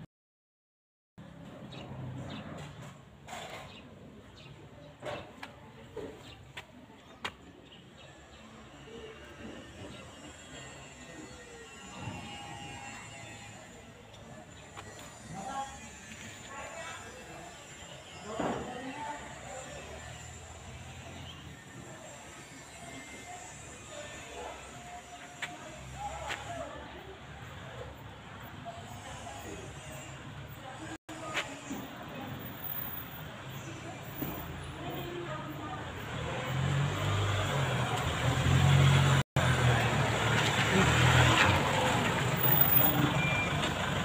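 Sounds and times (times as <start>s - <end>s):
faint indistinct voices: 1.2s - 44.0s.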